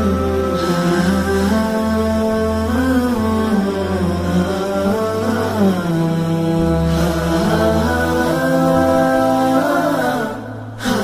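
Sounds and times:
low vocal drone: 0.0s - 11.0s
male voices humming melody: 0.0s - 11.0s.

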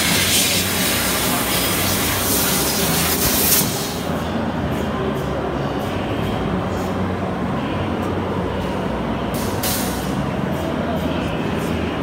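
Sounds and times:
laser cutting machine humming: 0.0s - 4.1s
machine hiss: 0.0s - 4.1s.

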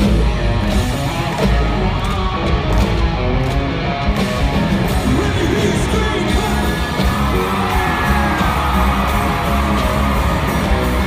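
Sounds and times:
country rock band playing: 0.0s - 11.0s
electric guitar: 0.0s - 11.0s
steady drum beat: 0.0s - 11.0s.

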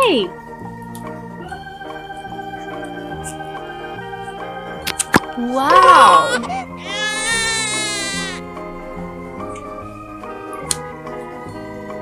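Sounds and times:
light children's music: 0.0s - 12.0s
newborn baby crying: 5.7s - 8.4s.

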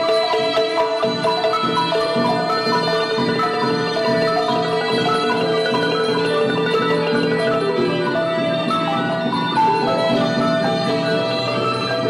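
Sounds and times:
struck mallet instrument notes: 0.0s - 12.0s.

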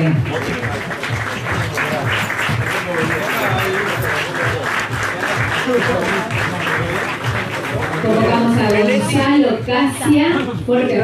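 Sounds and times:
audience applauding: 0.0s - 9.1s
background music: 0.0s - 11.0s.

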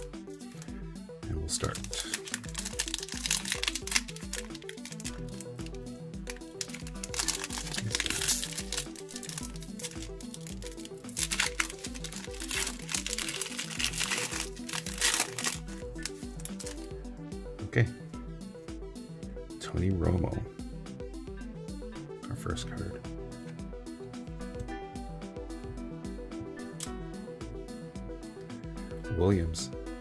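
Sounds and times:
background music with beat: 0.0s - 30.0s
foil wrapper crinkling and tearing: 1.6s - 16.9s.

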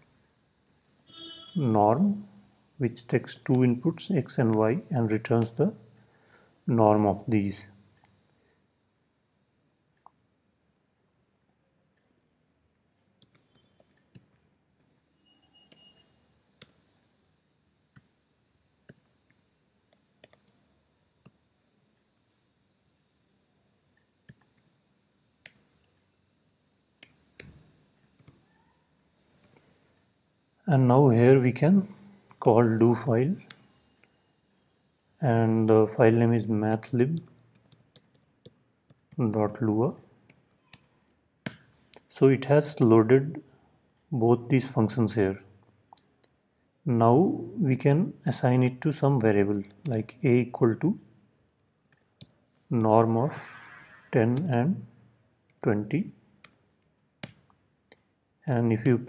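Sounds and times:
computer keyboard clicks: 12.9s - 15.0s, 18.9s - 20.6s, 24.3s - 24.7s, 27.0s - 28.4s.

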